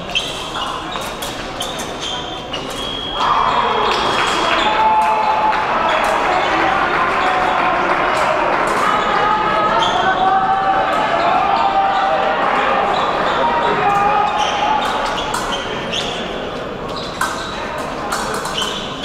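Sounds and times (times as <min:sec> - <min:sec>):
indistinct echoing voices: 0:00.0 - 0:19.0.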